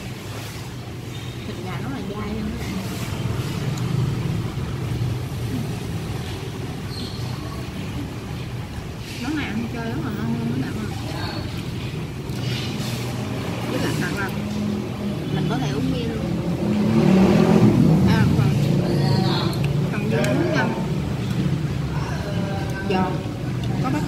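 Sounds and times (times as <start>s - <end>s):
road traffic rumble: 0.0s - 24.0s
voices chattering: 1.4s - 16.9s, 17.6s - 24.0s.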